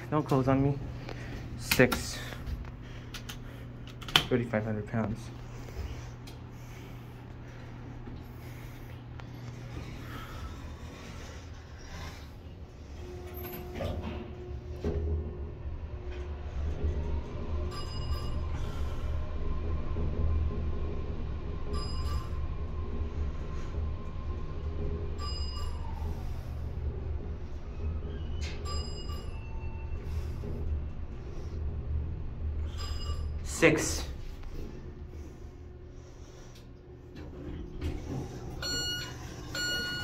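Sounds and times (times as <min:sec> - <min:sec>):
elevator motor whine: 0:00.0 - 0:40.0
elevator ride rumble: 0:00.0 - 0:40.0.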